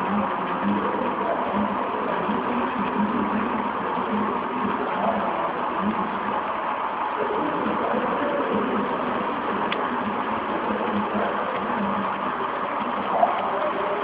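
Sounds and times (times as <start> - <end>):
model train wheels rolling on track: 0.0 - 14.0.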